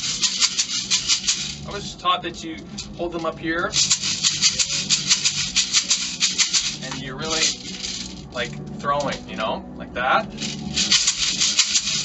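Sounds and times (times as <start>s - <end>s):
maracas rattling: 0.0s - 9.4s, 10.3s - 12.0s.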